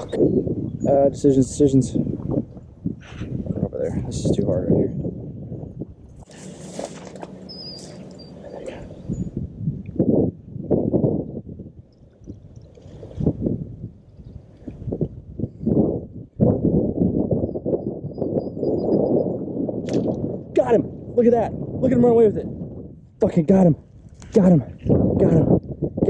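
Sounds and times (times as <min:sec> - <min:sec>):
wind buffeting microphone: 0:00.0 - 0:26.0
grass and brush rustling: 0:06.2 - 0:08.8.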